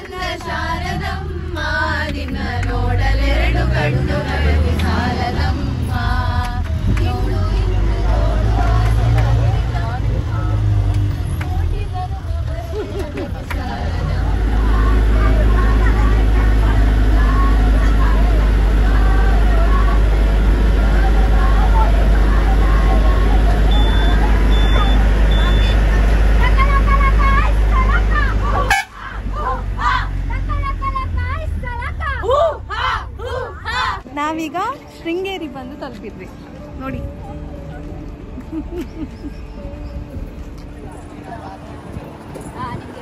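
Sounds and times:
bus engine and road rumble: 0.0 - 43.0
passengers chattering: 0.0 - 43.0
short high beeps: 23.7 - 25.8.

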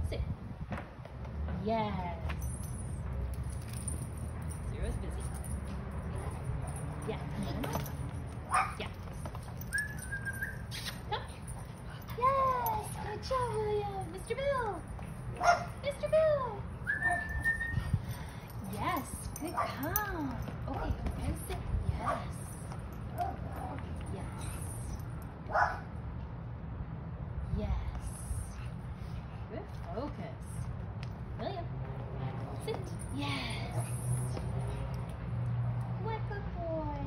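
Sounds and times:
puppy barking: 8.5 - 8.8, 15.4 - 15.8, 25.5 - 25.9
puppy whining: 9.6 - 11.0, 16.8 - 18.1.

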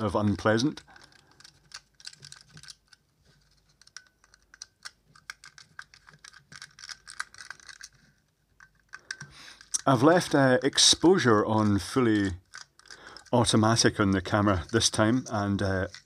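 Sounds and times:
screwdriver turning small screws: 0.0 - 8.0, 8.6 - 16.0.

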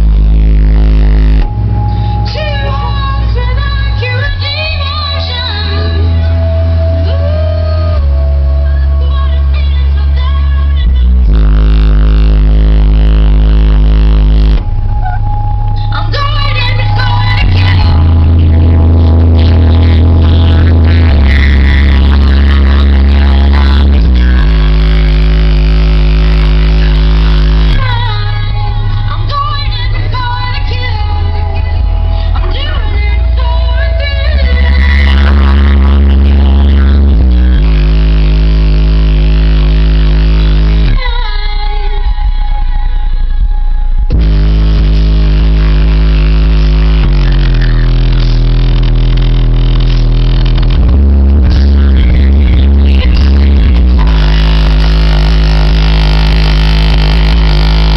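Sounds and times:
loud music with deep bass: 0.0 - 57.9.

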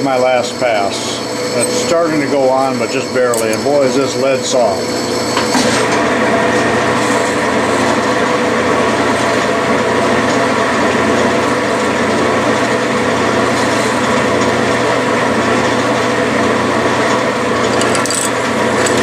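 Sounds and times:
metal lathe humming: 0.0 - 19.0.

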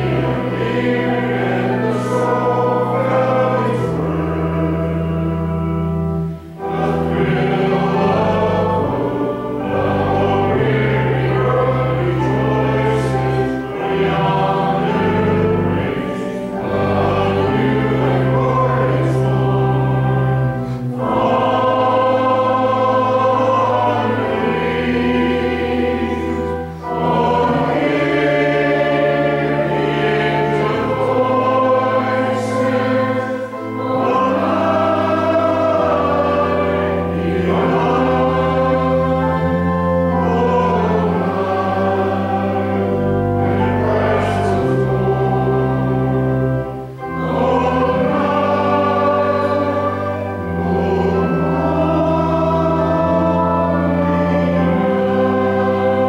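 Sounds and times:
choir singing a slow hymn: 0.0 - 56.0.

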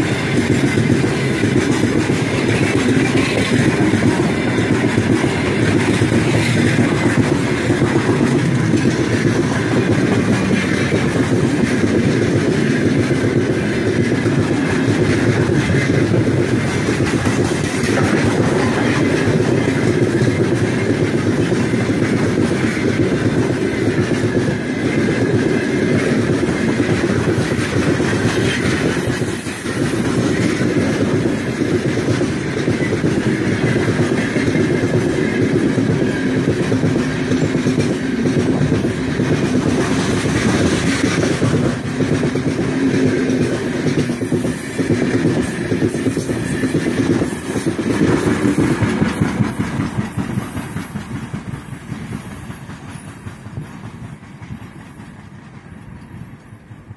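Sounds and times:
freight train rumbling past: 0.0 - 56.9.

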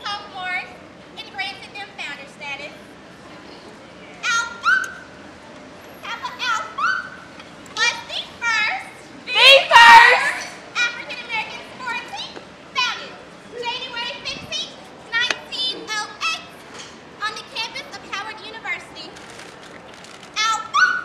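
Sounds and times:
women shouting: 6.4 - 7.2, 8.6 - 10.6.

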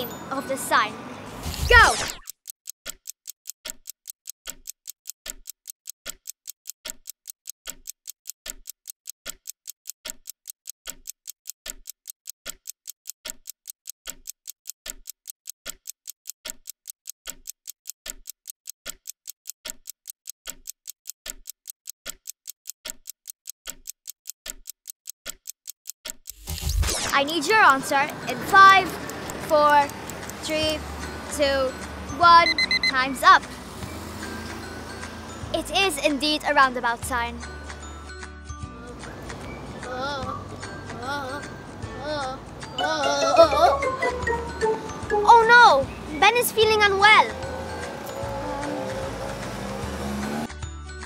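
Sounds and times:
clock ticking: 1.5 - 38.2, 39.0 - 50.6.

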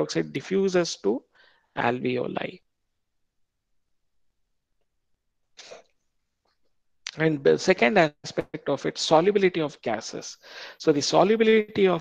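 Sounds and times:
man's sharp breath burst: 10.4 - 10.8.

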